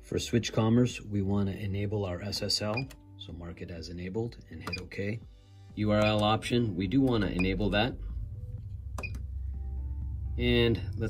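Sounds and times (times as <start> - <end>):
steady low hum: 3.0 - 11.0.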